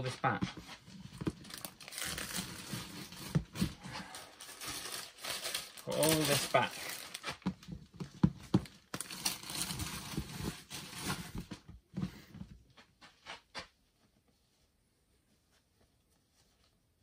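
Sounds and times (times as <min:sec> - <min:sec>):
plastic bag rustling: 0:00.9 - 0:07.6, 0:08.6 - 0:11.5.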